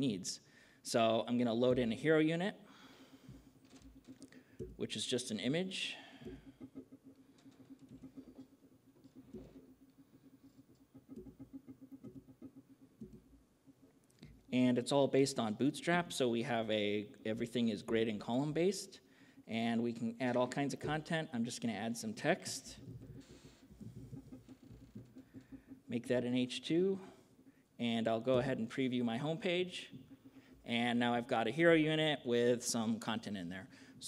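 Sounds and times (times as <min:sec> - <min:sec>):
faint low hum: 0:00.0 - 0:34.0
laptop keyboard tapping: 0:06.1 - 0:14.4, 0:22.8 - 0:25.9.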